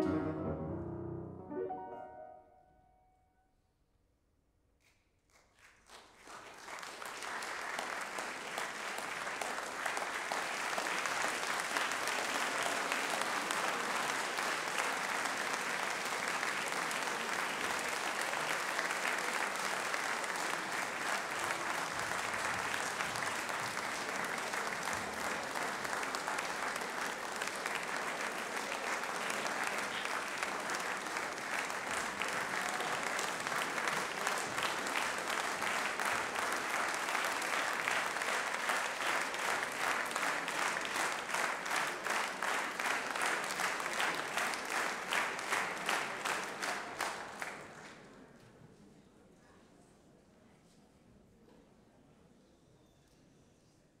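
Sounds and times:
audience applauding: 5.3 - 48.0.

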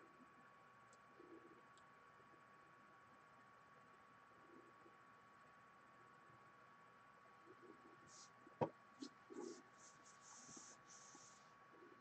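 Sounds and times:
faint scratching: 7.4 - 12.0.

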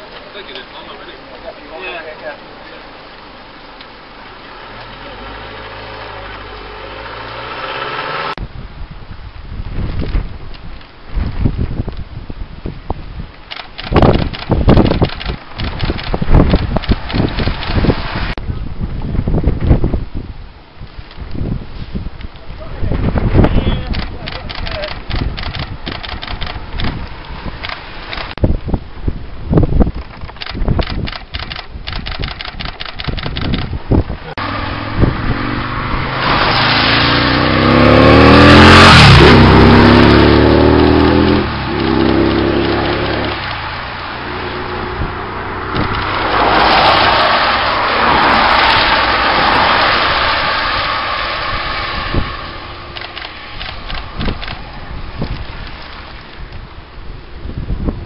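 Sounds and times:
tyres hissing on wet road: 0.0 - 8.4, 16.3 - 18.4, 34.2 - 56.5
vehicle engine passing by: 4.5 - 8.4, 34.2 - 55.0.

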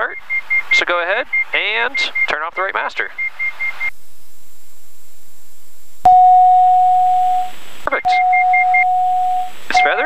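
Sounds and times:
steady electronic alert tone: 6.1 - 10.0.

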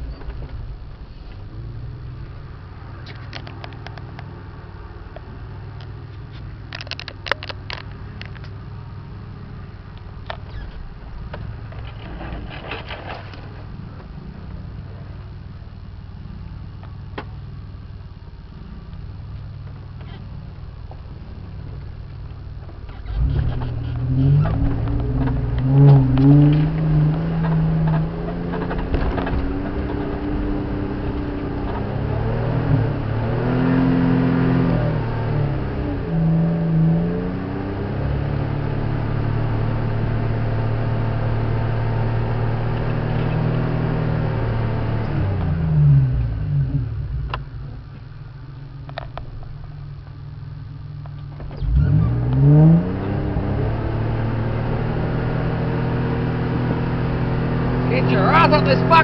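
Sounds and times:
vehicle engine idling and revving: 0.0 - 59.0
vehicle body knocks and rattles: 24.4 - 30.2.

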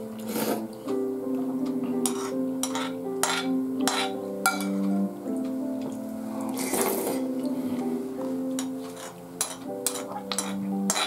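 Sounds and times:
background music of held notes: 0.0 - 11.0
metal spoon clinking in a bowl: 2.0 - 4.8, 8.6 - 11.0
noisy slurp: 6.3 - 7.3.

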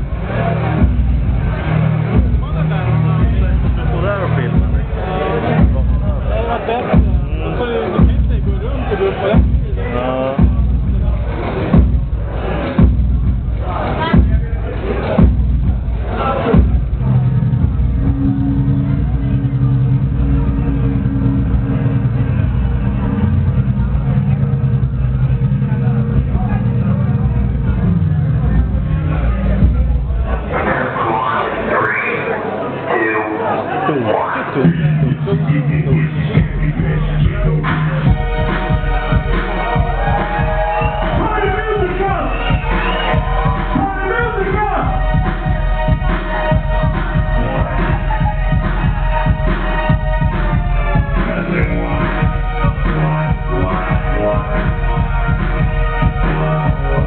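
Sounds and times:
electro music with heavy bass: 0.0 - 32.3, 33.8 - 57.0
voices over music: 0.0 - 57.0.

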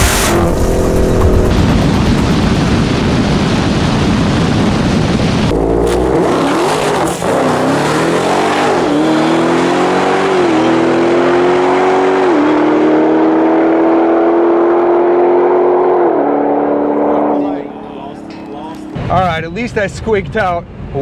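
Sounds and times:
car engine at full throttle: 0.0 - 19.5.

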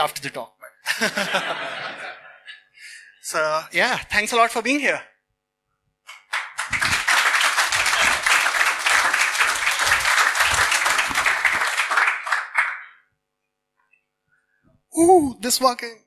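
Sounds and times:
audience applauding: 6.1 - 13.0.

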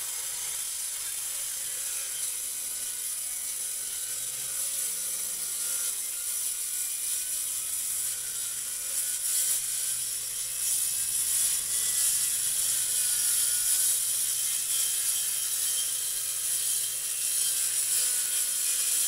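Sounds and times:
circular saw cutting wood: 0.0 - 19.0.

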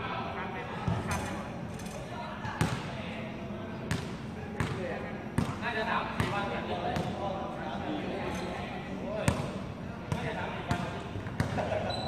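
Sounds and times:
murmur of players' voices: 0.0 - 12.0
basketballs bouncing on court: 3.9 - 4.8, 5.4 - 5.6, 6.2 - 7.2, 9.3 - 11.8.

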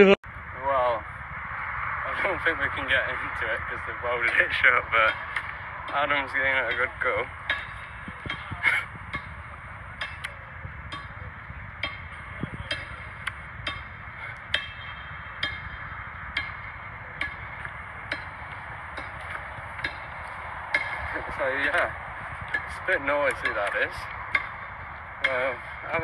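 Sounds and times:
tool hammering metal: 5.0 - 10.3, 11.8 - 26.0.

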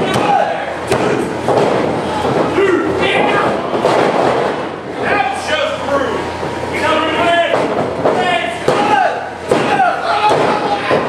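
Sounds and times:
people shouting: 0.0 - 4.1, 8.1 - 11.0.

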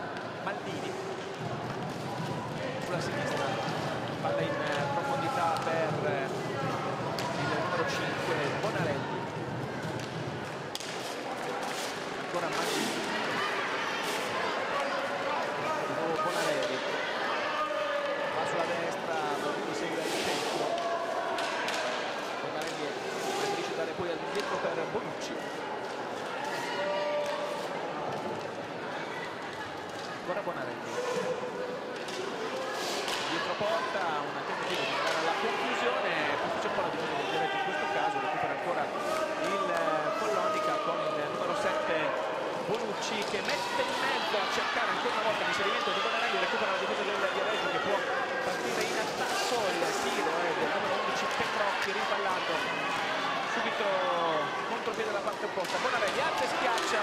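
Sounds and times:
spectators shouting and cheering: 0.0 - 57.0
clatter of skates: 9.9 - 13.4, 19.4 - 23.7, 48.4 - 50.3.

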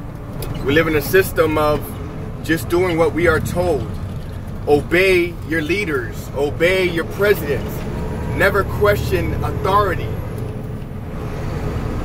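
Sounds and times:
vehicle engine rumble from cab: 0.0 - 12.0.

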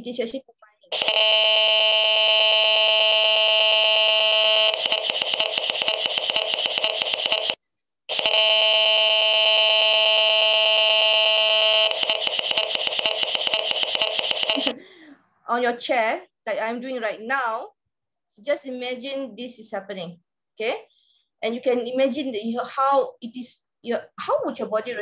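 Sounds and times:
fast irregular clicking: 4.7 - 8.3, 11.9 - 14.7.

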